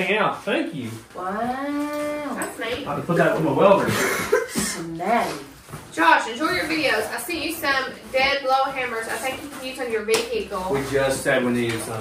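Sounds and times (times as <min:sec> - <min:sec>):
short laugh: 0:03.9 - 0:04.8.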